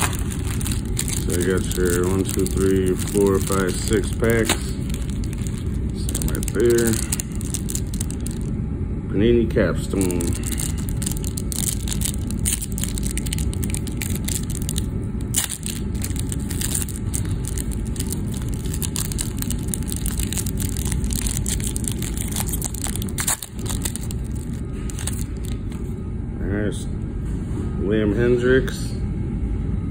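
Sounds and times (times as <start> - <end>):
foil wrapper crinkling: 0.0 - 8.5, 9.9 - 25.9
steady low rumble: 0.0 - 27.9.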